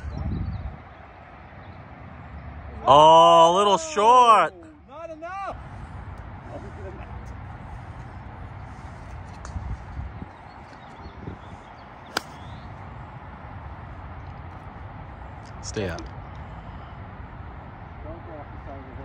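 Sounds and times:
golf club striking ball: 0:12.0 - 0:12.7.

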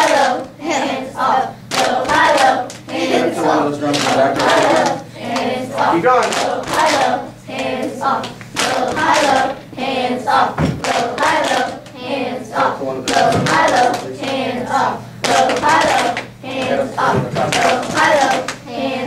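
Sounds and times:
voices chanting rhythmically: 0:00.0 - 0:19.0.

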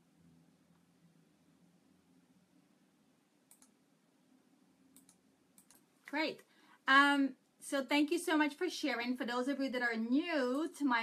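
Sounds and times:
faint room hum: 0:00.0 - 0:11.0
soft clicks: 0:03.4 - 0:03.8, 0:04.9 - 0:06.2.

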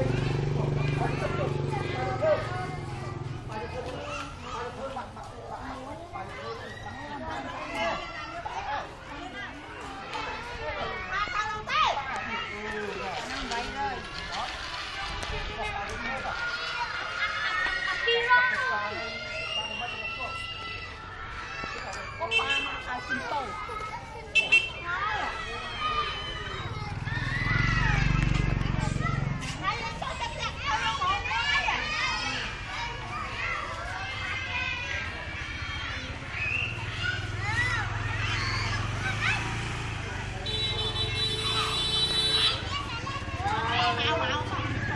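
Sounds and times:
children calling and chattering: 0:00.0 - 0:44.9.

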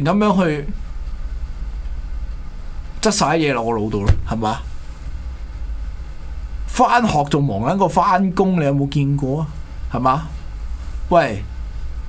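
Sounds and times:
low background hum: 0:00.0 - 0:12.0
faint hiss: 0:02.9 - 0:05.4.

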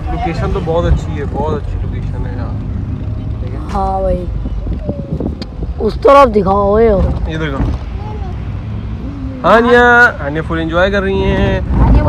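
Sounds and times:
car driving rumble: 0:00.0 - 0:12.0.

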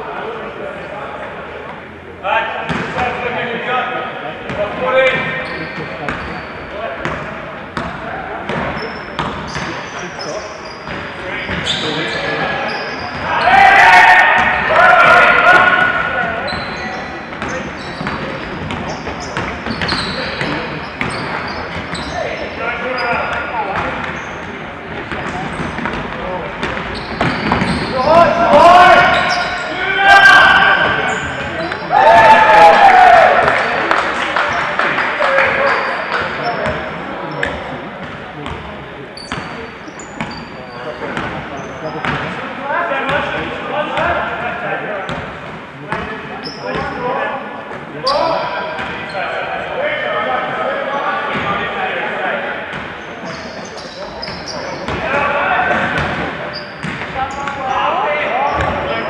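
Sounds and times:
players calling out: 0:04.4 - 0:37.8
basketball bouncing on court: 0:06.1 - 0:09.8, 0:16.5 - 0:22.2, 0:25.0 - 0:28.0, 0:42.0 - 0:42.3, 0:55.7 - 0:57.6, 0:58.5 - 0:58.8.

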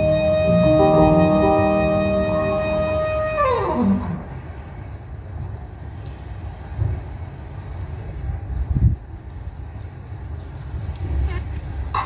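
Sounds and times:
low uneven rumble: 0:00.3 - 0:12.0.

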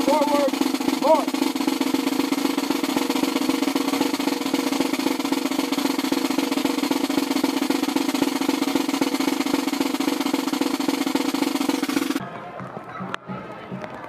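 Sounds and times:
snare drum roll: 0:00.0 - 0:12.2.

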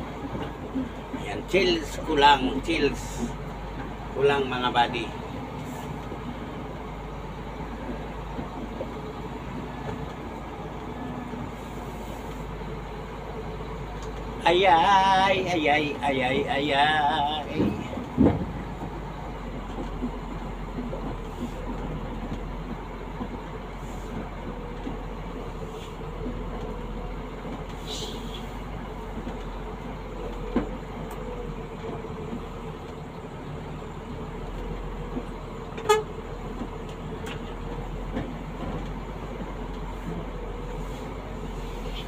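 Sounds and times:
vehicle engine and road noise: 0:00.0 - 0:42.0.

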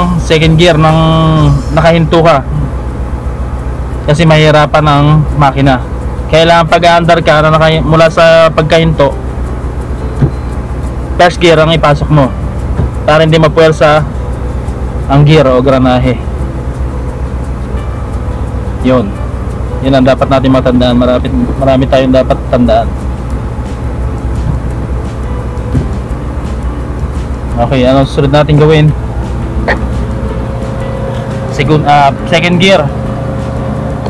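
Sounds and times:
car engine idling: 0:00.0 - 0:34.0.

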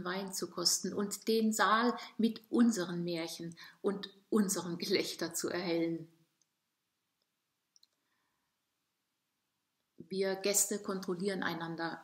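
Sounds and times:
woman speaking: 0:00.0 - 0:06.2, 0:10.0 - 0:12.0.

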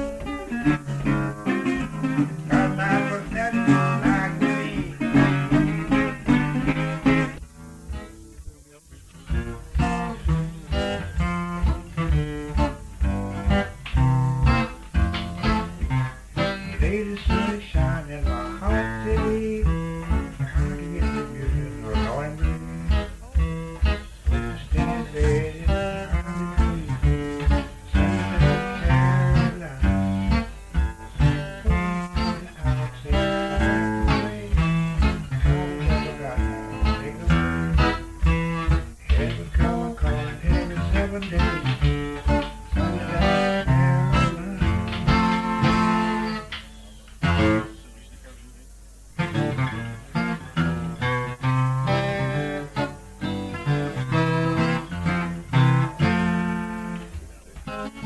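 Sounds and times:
acoustic blues guitar playing: 0:00.0 - 0:58.0.

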